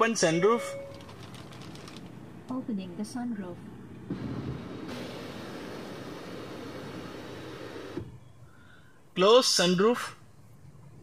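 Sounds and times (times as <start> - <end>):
sunroof motor humming: 3.9 - 8.3.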